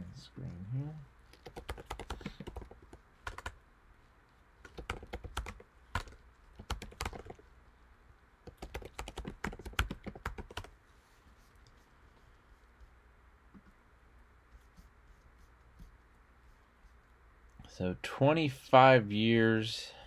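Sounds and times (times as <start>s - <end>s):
typing on computer keyboard: 1.3s - 3.6s, 4.6s - 7.5s, 8.4s - 10.7s.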